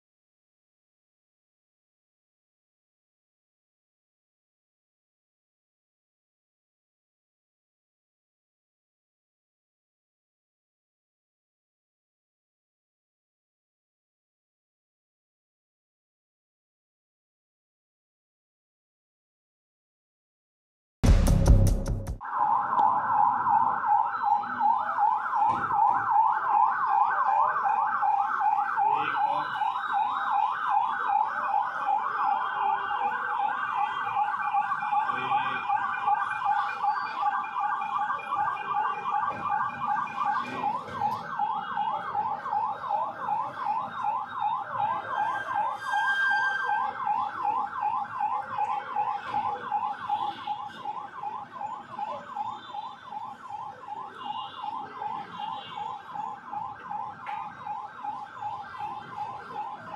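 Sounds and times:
police siren yelping: 22.2 - 59.9.

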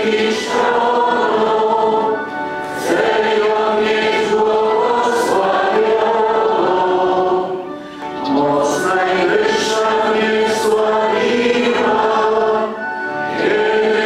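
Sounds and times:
voices singing a slow hymn: 0.0 - 14.0.

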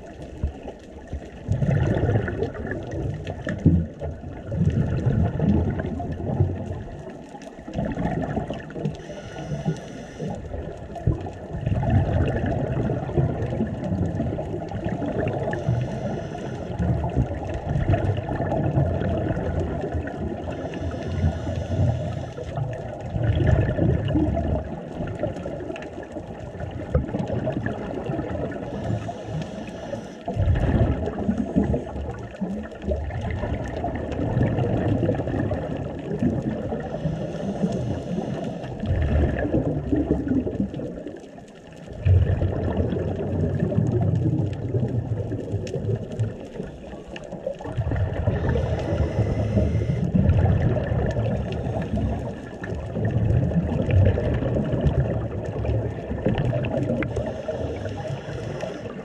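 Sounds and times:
bubbles bursting on exhale: 0.0 - 59.0
underwater water noise: 0.0 - 59.0
regulator inhale hiss: 8.9 - 10.6, 15.5 - 16.9, 20.4 - 22.6, 28.6 - 30.4, 36.8 - 38.9, 48.3 - 50.1, 51.4 - 52.5, 57.0 - 59.0.

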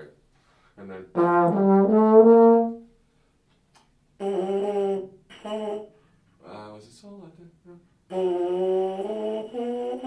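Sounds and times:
trombone mouthpiece buzzing notes: 1.1 - 2.9.

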